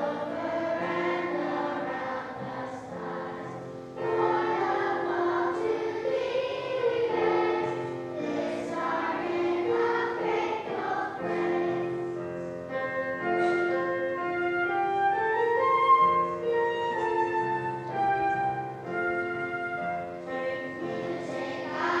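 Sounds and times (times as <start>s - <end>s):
children's choir singing: 0.0s - 22.0s
piano accompaniment: 0.0s - 22.0s.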